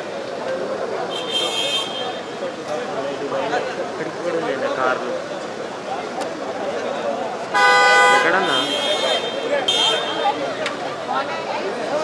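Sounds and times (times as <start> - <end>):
vehicle horn honking: 1.1 - 2.3, 7.6 - 10.4
men chattering: 1.8 - 12.0.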